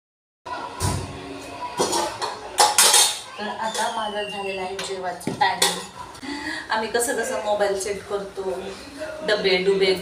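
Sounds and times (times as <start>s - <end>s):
metal cookware clinking: 1.8s - 4.1s, 4.8s - 6.0s.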